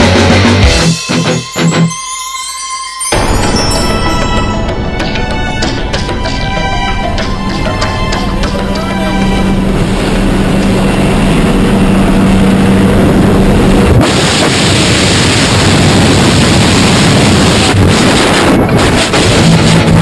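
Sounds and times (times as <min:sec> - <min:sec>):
freefall wind noise on microphone: 0:03.2 - 0:20.0
plane engine droning: 0:03.2 - 0:20.0.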